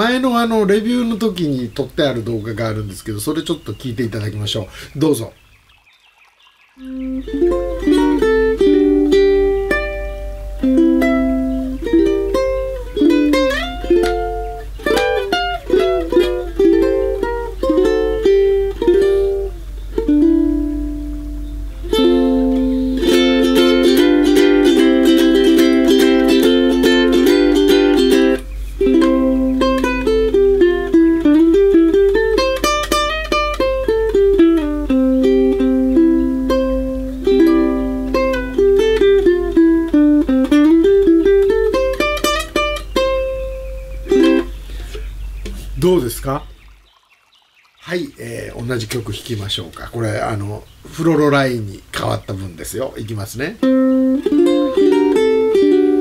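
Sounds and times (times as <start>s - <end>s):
ukulele melody plucked: 6.8s - 45.7s, 53.6s - 56.0s.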